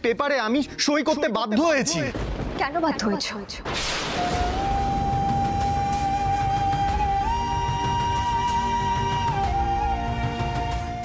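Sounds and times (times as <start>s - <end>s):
long held flute note: 4.2s - 11.0s.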